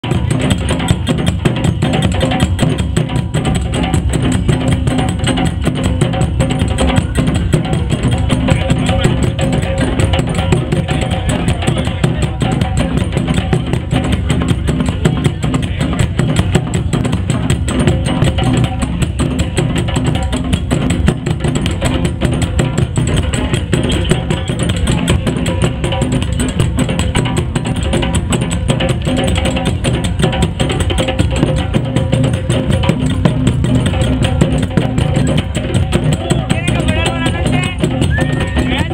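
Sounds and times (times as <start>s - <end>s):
drums playing fast rhythm: 0.0s - 38.9s.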